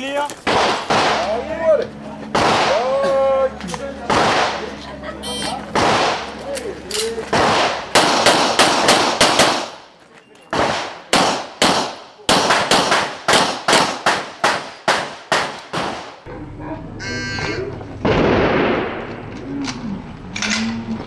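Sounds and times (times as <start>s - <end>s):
rapid pistol shots: 0.4s - 1.3s, 2.3s - 2.9s, 4.1s - 4.7s, 5.7s - 6.4s, 7.3s - 9.8s, 10.5s - 16.2s.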